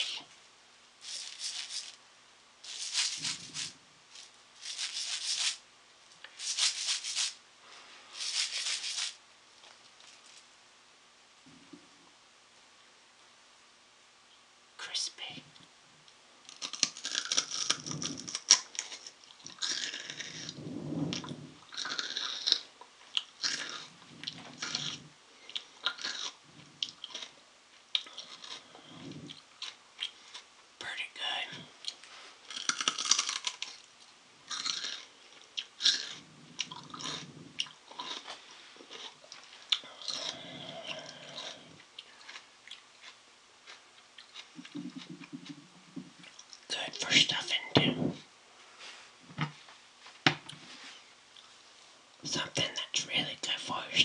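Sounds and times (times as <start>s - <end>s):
crunching and chewing plant stalk: 16.5s - 20.6s, 21.7s - 30.5s, 31.8s - 33.9s, 34.5s - 45.6s.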